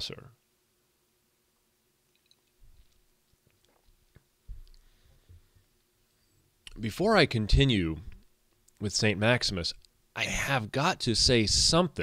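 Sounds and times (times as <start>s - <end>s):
small clicks: 2.1s - 3.8s
soft low thumps: 4.4s - 5.4s.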